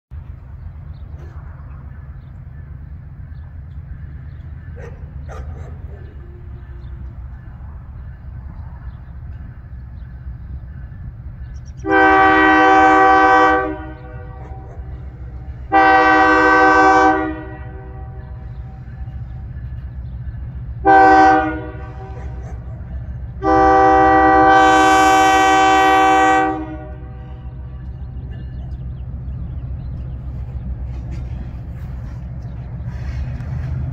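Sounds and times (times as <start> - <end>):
locomotive air horn blasts: 11.8 - 19.2, 20.8 - 28.5
steady low rumble: 12.7 - 25.2, 25.8 - 33.9.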